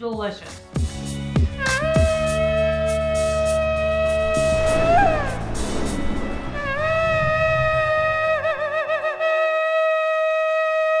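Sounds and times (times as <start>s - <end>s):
shofar blast: 1.6s - 11.0s.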